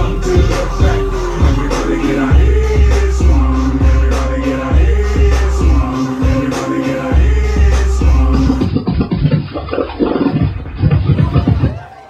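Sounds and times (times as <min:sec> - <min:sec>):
beatboxing into a microphone: 0:00.0 - 0:12.0.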